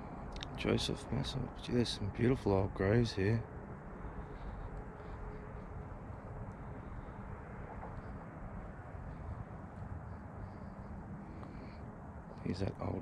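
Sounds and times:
distant highway traffic rumble: 0:00.0 - 0:13.0.

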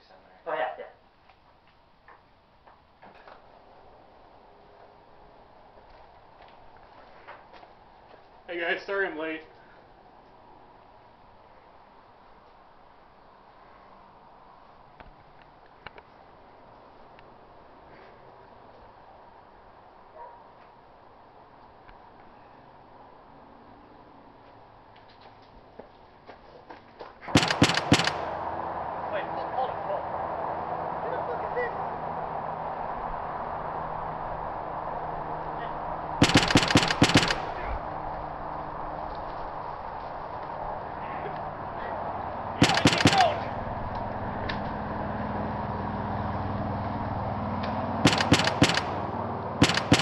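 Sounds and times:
steady background noise: 0:00.0 - 0:50.0
gunshots: 0:27.3 - 0:28.5, 0:36.2 - 0:37.9, 0:42.6 - 0:43.7, 0:48.0 - 0:50.0
volley of sharp bangs: 0:27.3 - 0:28.6, 0:36.2 - 0:38.0, 0:42.6 - 0:43.8, 0:48.0 - 0:50.0.

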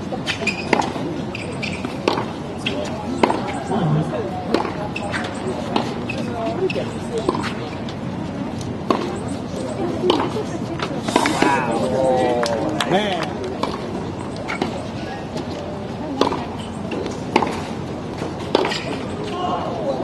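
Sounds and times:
tennis ball knocks: 0:04.5 - 0:05.0, 0:16.2 - 0:19.0.

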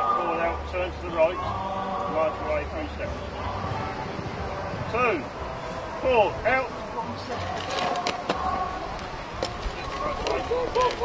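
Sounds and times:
background music: 0:00.0 - 0:11.0
faint background voices: 0:00.0 - 0:11.0
marching footsteps on tarmac: 0:07.4 - 0:11.0.

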